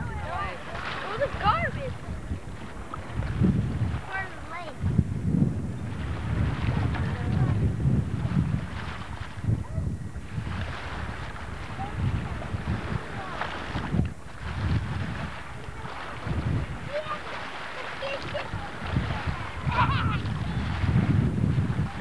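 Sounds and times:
faint indistinct voices: 0.0s - 5.0s, 5.9s - 22.0s
wind buffeting microphone: 0.0s - 22.0s.

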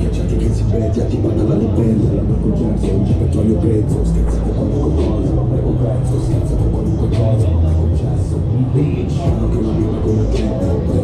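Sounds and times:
loud fairground music: 0.0s - 11.0s
rumble of swinging ride: 0.0s - 11.0s.

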